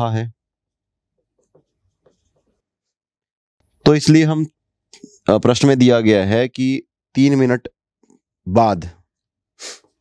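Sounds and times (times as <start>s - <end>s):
marker writing on whiteboard: 1.4s - 2.6s.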